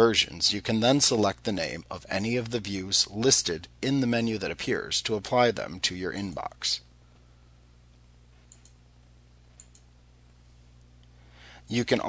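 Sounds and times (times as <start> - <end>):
low steady hum: 0.0 - 12.0
computer mouse clicks: 8.4 - 8.8, 9.5 - 9.9.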